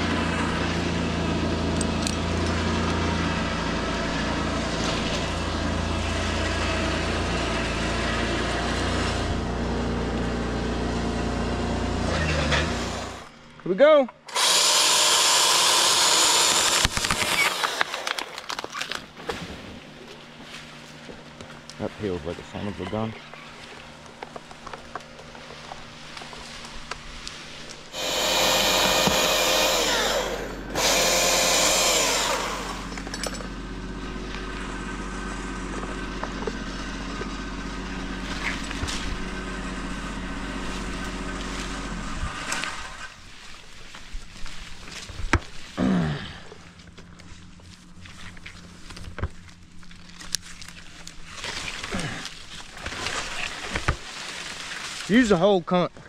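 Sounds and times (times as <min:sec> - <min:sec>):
chainsaw cutting wood: 0:00.1 - 0:13.3, 0:14.2 - 0:19.0, 0:27.6 - 0:33.4.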